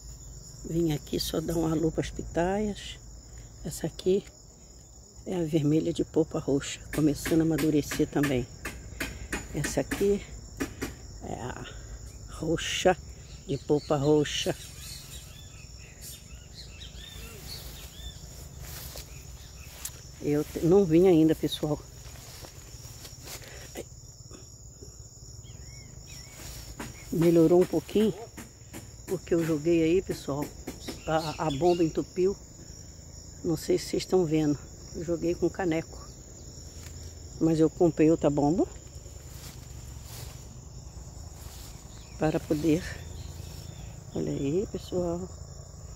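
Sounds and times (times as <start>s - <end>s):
insects trilling: 0.0s - 45.9s.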